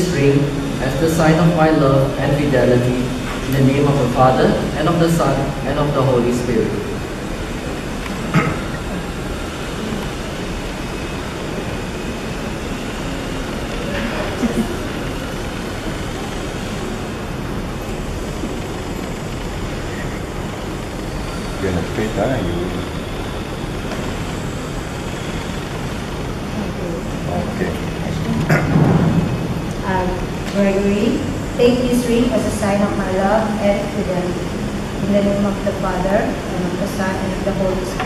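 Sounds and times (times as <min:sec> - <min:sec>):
electric fans rushing: 0:00.0 - 0:38.0.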